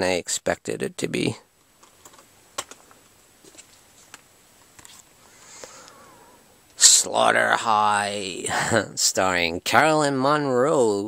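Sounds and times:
plastic disc case clicks: 1.8s - 3.0s.

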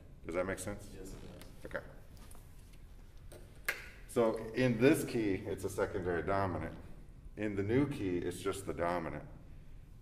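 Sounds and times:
steady low hum: 0.0s - 10.0s
man speaking: 4.1s - 9.4s.

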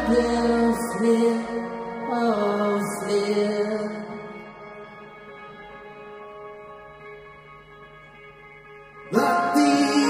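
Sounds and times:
live pop band playing: 9.1s - 10.0s.

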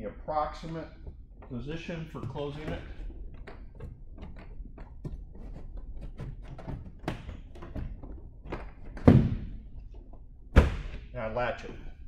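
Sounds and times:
heavy door thump: 9.0s - 9.5s, 10.5s - 11.0s.

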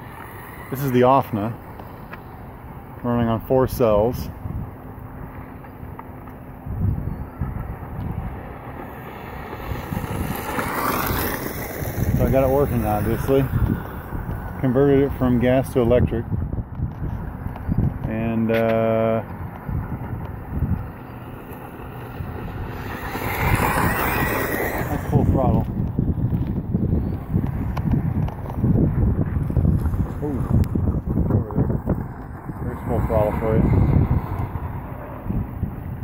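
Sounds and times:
wind buffeting microphone: 0.0s - 36.0s
electric toy car motor: 8.8s - 14.4s, 20.3s - 26.4s.

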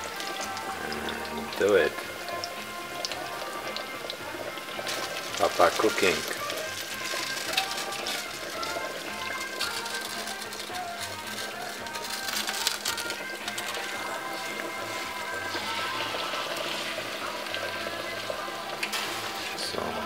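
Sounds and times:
background music: 0.0s - 20.0s
cutlets sizzling in hot oil: 0.0s - 20.0s.

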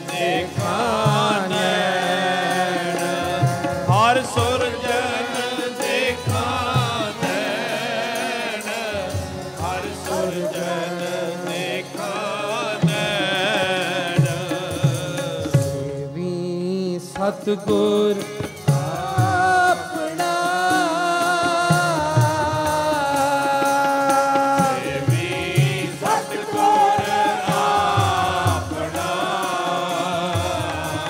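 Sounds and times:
harmonium held notes: 0.0s - 31.0s
man singing a hymn: 0.0s - 31.0s.

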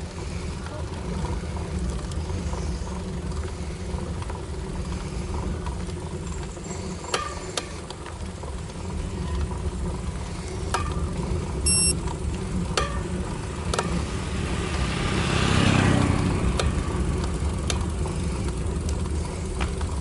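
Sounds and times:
bicycle ride rumble: 0.0s - 20.0s
short high beep: 11.7s - 12.0s.

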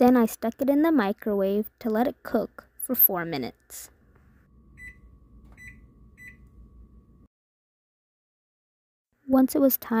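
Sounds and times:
low steady hum: 0.0s - 7.3s
microwave keypad beeps: 4.7s - 6.6s.

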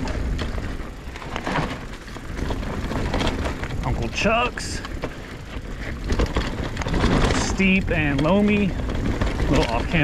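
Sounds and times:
bike rattles and clicks: 0.0s - 10.0s
bike tyre noise on dirt: 0.0s - 10.0s
wind rushing over microphone: 0.0s - 10.0s.

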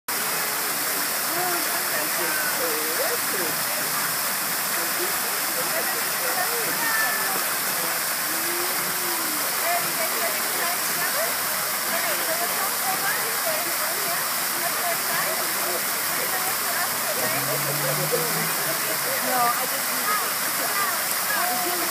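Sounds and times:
fountain water falling: 0.1s - 21.9s.

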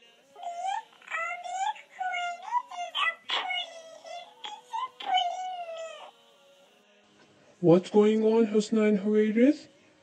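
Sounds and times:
child whining: 0.4s - 6.2s.

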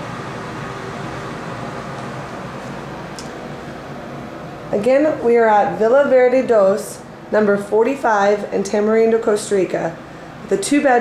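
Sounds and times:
air conditioner hiss: 0.0s - 11.0s.

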